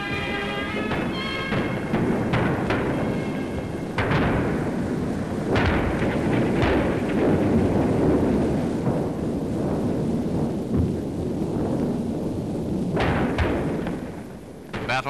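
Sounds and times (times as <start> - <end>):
continuous low rumble: 0.0 - 15.0
artillery gun reports: 14.7 - 15.0.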